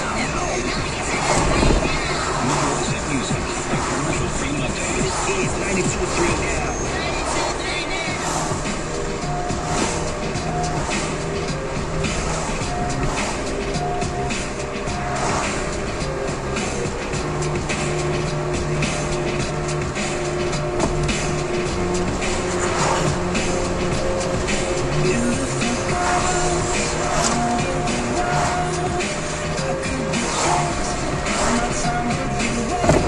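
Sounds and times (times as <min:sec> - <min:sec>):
music on car radio: 0:00.0 - 0:33.0
road and engine noise: 0:00.0 - 0:33.0.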